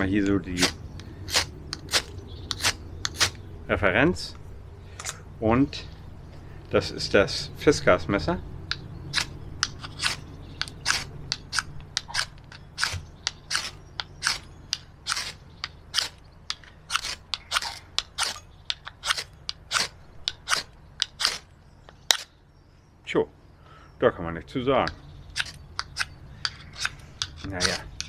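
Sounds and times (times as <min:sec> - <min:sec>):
knife rasping on ferro rod: 0:00.6 - 0:03.4, 0:09.2 - 0:14.4, 0:16.9 - 0:18.4, 0:19.0 - 0:21.4.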